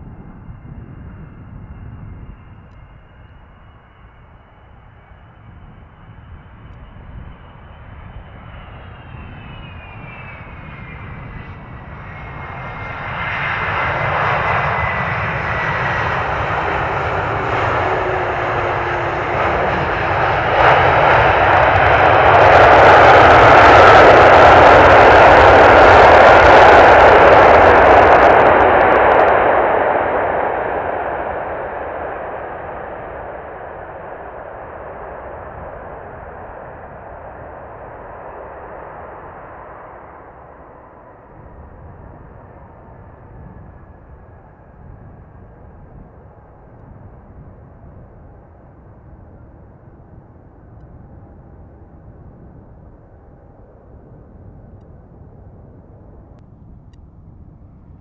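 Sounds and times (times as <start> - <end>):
jet engine noise: 0.0 - 58.0
jet engine whine: 0.0 - 58.0.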